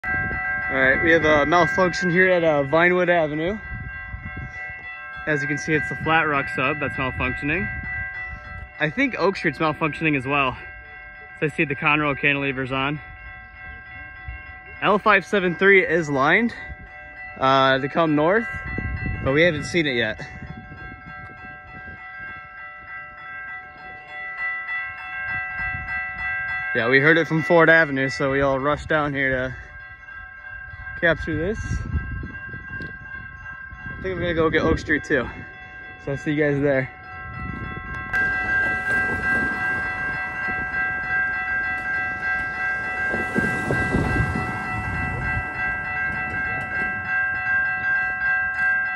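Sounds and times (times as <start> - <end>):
railroad crossing bells ringing: 0.0 - 48.9.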